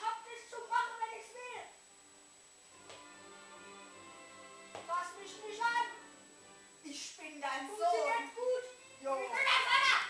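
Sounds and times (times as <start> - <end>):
voices talking: 6.8 - 10.0.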